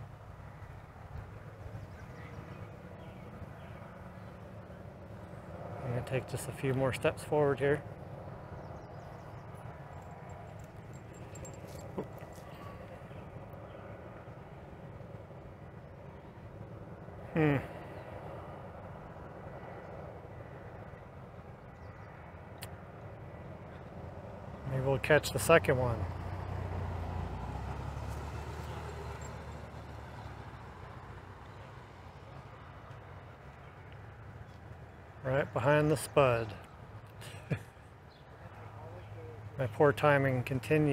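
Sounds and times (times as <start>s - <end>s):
faint steady tones: 0.0s - 17.2s
low outdoor hum and rumble: 0.0s - 40.9s
motor vehicle engine rumble passing: 21.4s - 40.9s.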